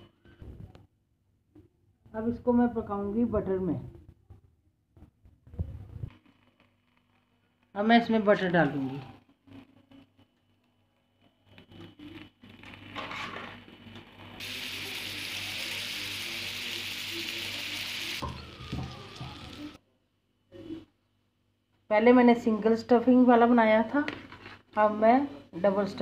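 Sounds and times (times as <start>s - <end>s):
butter sizzling in a hot pan: 14.4s - 19.8s.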